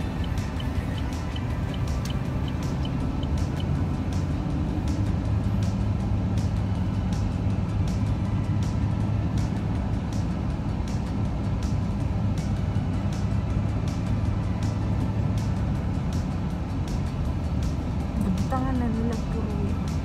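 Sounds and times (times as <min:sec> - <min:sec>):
car road and engine rumble: 0:00.0 - 0:20.0
music with regular beat: 0:00.0 - 0:20.0.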